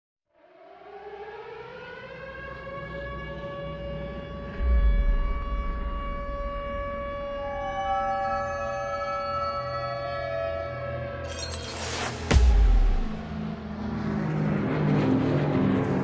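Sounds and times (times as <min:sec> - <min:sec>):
siren-like wail: 0:00.4 - 0:16.0
deep boom: 0:04.5 - 0:07.7, 0:12.3 - 0:13.6.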